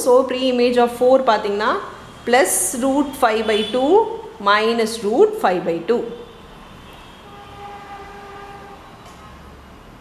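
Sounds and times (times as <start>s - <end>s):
horn steady note: 6.2s - 9.4s.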